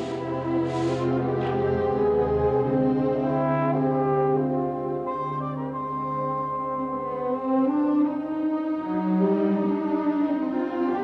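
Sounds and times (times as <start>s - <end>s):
orchestral brass chords: 0.0s - 10.0s.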